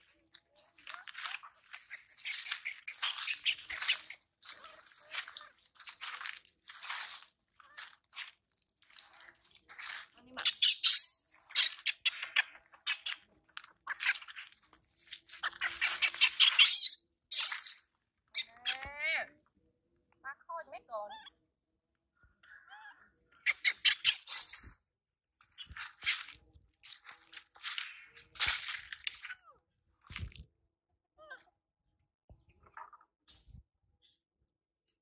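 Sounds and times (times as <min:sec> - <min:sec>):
dry leaves rustling and crunching: 0:00.0 - 0:10.2, 0:25.6 - 0:29.4.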